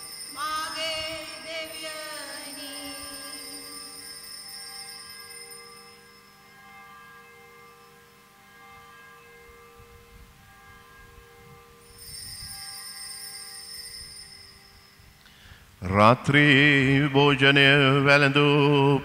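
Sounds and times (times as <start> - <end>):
altar bells ringing: 0.0 - 16.0.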